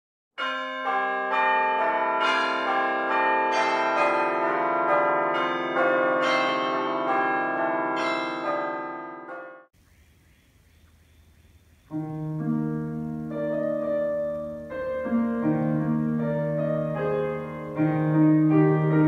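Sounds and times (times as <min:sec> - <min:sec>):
church bells ringing a peal: 0:00.4 - 0:09.7, 0:11.9 - 0:19.0.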